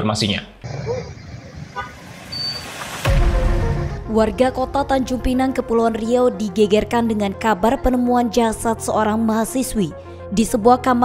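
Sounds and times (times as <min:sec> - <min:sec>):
motorcycles passing: 0:00.6 - 0:03.1
cars passing: 0:00.6 - 0:04.0.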